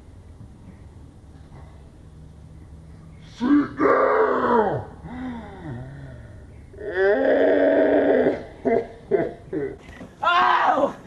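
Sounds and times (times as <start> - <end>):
person groaning: 3.4 - 8.5.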